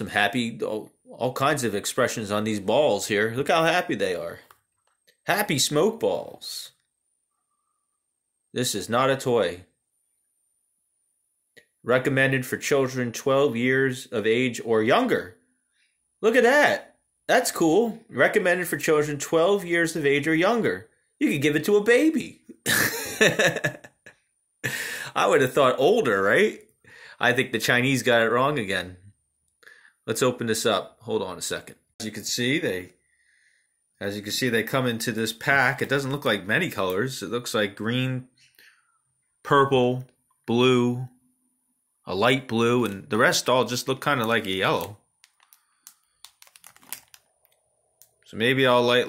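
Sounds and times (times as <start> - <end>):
man speaking: 0.0 - 4.5, 5.2 - 6.9, 8.5 - 9.7, 11.8 - 15.4, 16.2 - 23.9, 24.7 - 29.2, 30.0 - 32.9, 34.0 - 38.4, 39.4 - 41.2, 42.0 - 45.0, 48.3 - 49.0
man laughing: 22.5 - 25.2
plastic bag crinkling: 44.1 - 48.2.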